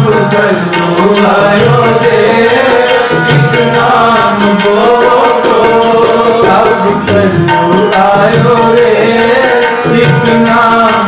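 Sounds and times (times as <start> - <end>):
harmonium reed drone: 0.0 - 11.0
men singing: 0.0 - 11.0
tabla strokes: 0.0 - 11.0.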